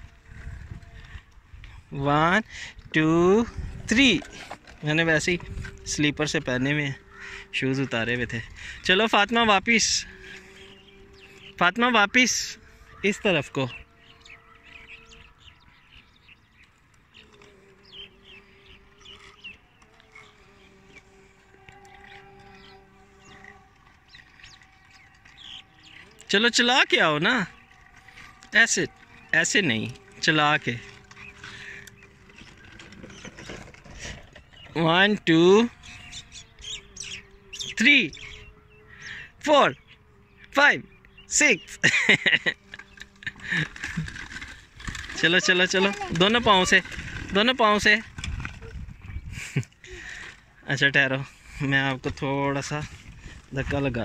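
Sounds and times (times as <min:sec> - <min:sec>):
bicycle rolling over dirt: 0:00.0 - 0:40.0, 0:41.2 - 0:54.0
faint birds chirping: 0:00.0 - 0:54.0.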